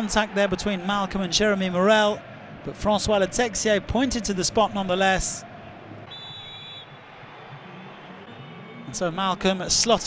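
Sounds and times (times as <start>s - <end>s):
stadium crowd noise: 0.0s - 10.0s
referee's whistle blast: 6.1s - 7.0s.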